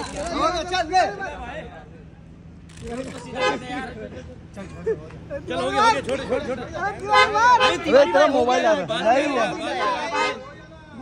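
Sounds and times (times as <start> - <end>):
low rumble of background noise: 0.0 - 11.0
men calling out: 3.2 - 11.0.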